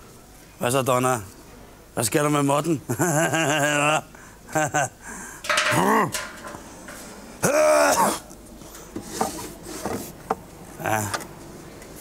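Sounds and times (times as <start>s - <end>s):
wooden dowels knocking: 5.5s - 6.6s.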